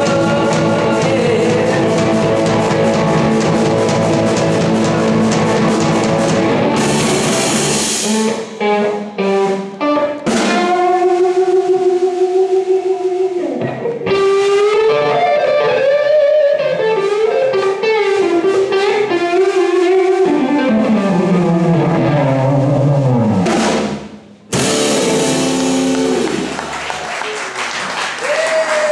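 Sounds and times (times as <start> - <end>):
electric guitar lead: 0.0 - 23.6, 24.5 - 27.0
live blues band playing: 0.0 - 27.0.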